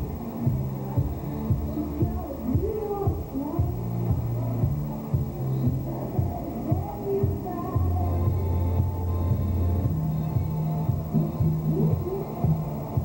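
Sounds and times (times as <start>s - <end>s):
music with steady beat and bass: 0.0s - 13.0s
voices: 0.0s - 13.0s.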